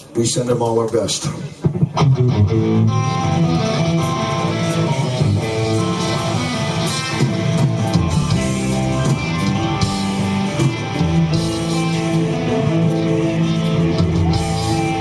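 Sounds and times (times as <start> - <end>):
electric guitars playing: 1.4 - 15.0.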